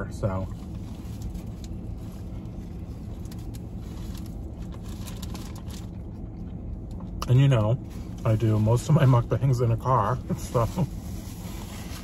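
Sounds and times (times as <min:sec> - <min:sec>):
car idling hum: 0:00.0 - 0:12.0
paper wrapper rustling: 0:03.2 - 0:05.9.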